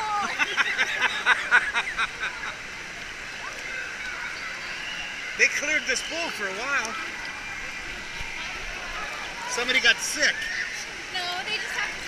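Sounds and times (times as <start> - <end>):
woman laughing: 0.0 - 2.5
pool water washing: 0.0 - 12.0.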